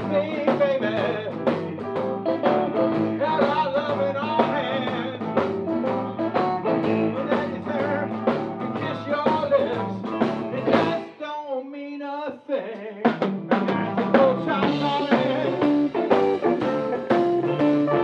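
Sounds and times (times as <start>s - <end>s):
live blues band playing: 0.0s - 11.3s, 12.7s - 18.0s
wavering sliding guitar note: 0.8s - 11.1s.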